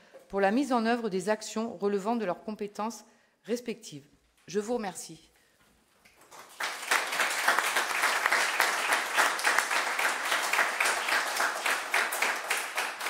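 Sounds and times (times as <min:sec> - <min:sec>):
crowd applauding: 0:06.2 - 0:13.0.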